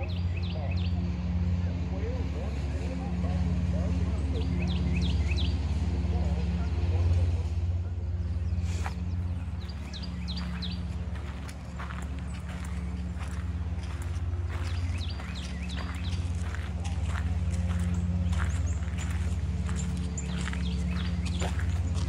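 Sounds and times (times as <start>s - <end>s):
songbirds chirping: 0.0s - 22.0s
steady low rumble: 0.0s - 22.0s
footsteps on sandy path: 8.3s - 22.0s.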